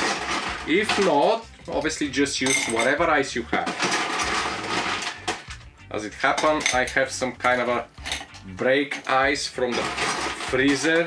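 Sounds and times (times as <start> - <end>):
ice rattling and clinking: 0.0 - 5.6, 6.2 - 11.0.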